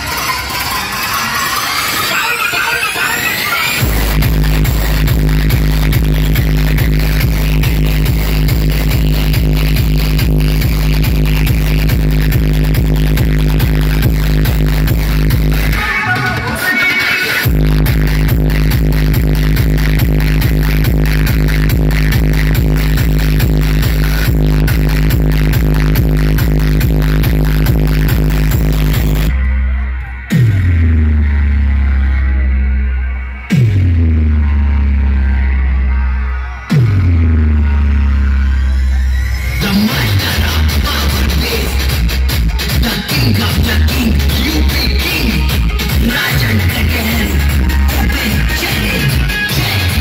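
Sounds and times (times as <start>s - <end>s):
loud electronic dance music: 0.0s - 50.0s
deep steady bass: 3.8s - 16.5s, 17.4s - 50.0s
heavy kick drum: 3.8s - 16.6s, 17.4s - 29.3s, 39.9s - 50.0s.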